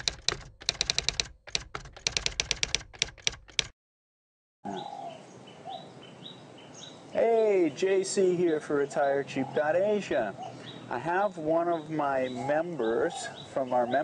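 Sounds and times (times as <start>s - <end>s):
keyboard typing clicks: 0.0s - 3.7s
birds chirping: 4.6s - 14.0s
man speaking: 7.2s - 14.0s.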